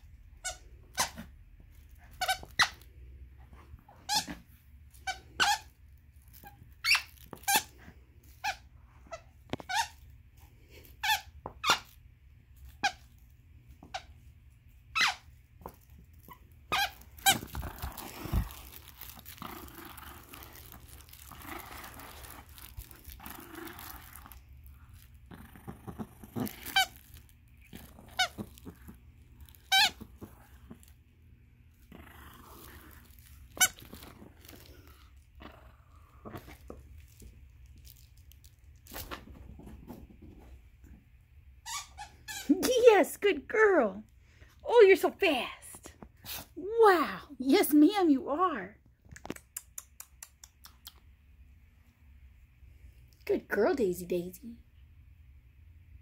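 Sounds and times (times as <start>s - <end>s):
dog toy squeaking: 0.4s - 1.3s, 2.0s - 2.9s, 4.0s - 7.7s, 8.4s - 10.1s, 10.9s - 12.0s, 14.9s - 19.2s, 26.4s - 27.2s, 27.8s - 28.8s, 29.4s - 30.6s, 33.1s - 34.6s, 41.6s - 42.7s.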